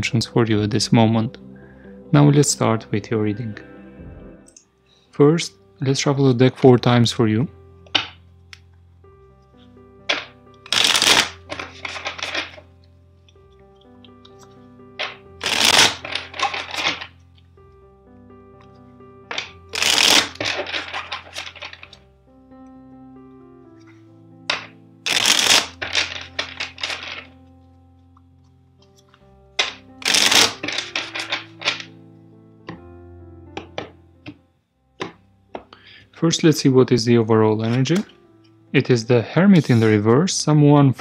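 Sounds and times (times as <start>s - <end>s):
soft background music: 0.0s - 41.0s
card snaps and taps: 10.1s - 12.6s, 28.1s - 31.9s, 35.0s - 35.7s
cards being riffle-shuffled: 10.1s - 12.7s, 13.6s - 17.2s, 19.3s - 22.0s, 24.5s - 27.3s, 28.8s - 31.9s, 39.6s - 40.0s.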